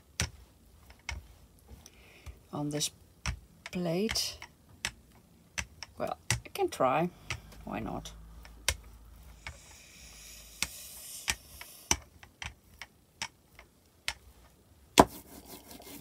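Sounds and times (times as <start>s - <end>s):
roller rolling hiss: 9.3s - 12.0s.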